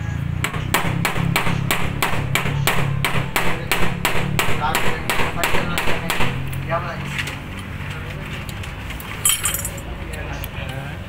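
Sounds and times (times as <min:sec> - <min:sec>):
rapid metal knocks: 0:00.4 - 0:06.5.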